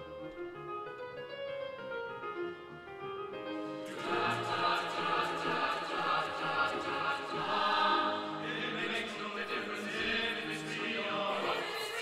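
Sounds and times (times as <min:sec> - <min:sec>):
mixed choir singing: 0:03.8 - 0:12.0.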